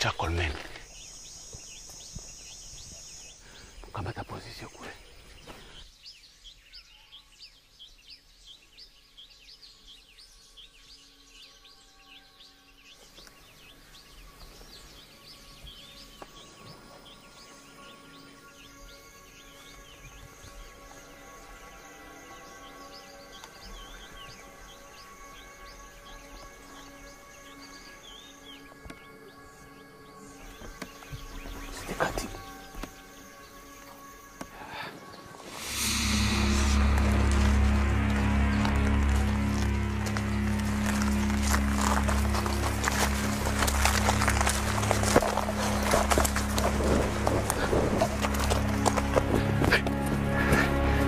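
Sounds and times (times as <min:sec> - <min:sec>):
sustained music tones: 0:09.8 - 0:51.0.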